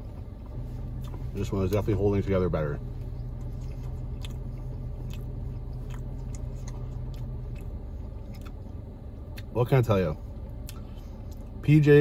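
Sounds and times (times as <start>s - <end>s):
low steady hum: 0.0s - 12.0s
person chewing food: 0.4s - 1.8s, 2.9s - 9.5s, 10.3s - 11.6s.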